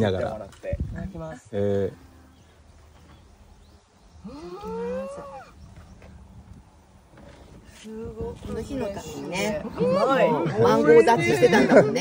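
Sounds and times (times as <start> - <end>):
voices speaking in chorus: 8.6 - 12.0.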